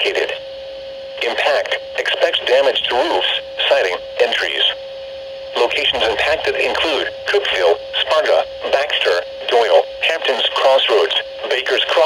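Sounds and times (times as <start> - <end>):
computer voice through small speaker: 5.6 - 9.0.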